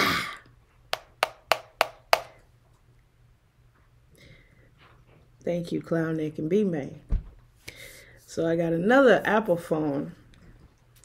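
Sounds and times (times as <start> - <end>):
sharp taps: 0.9 - 2.4.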